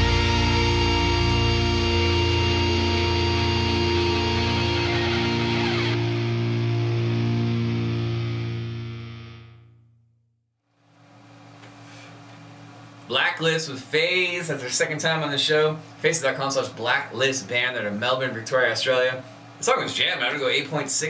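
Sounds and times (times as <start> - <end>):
distorted guitar and bass chord: 0.0 - 10.1.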